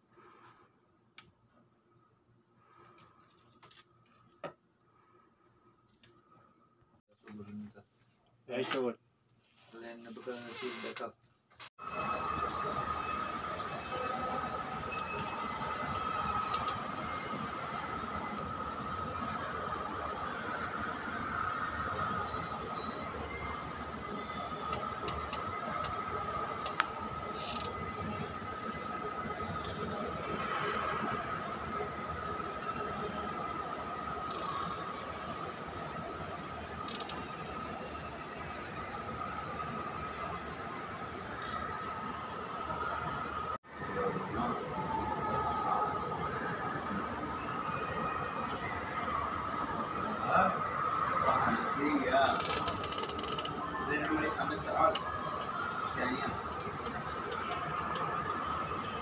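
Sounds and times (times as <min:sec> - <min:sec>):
high-pitched whine: 0:11.8 - 0:52.8.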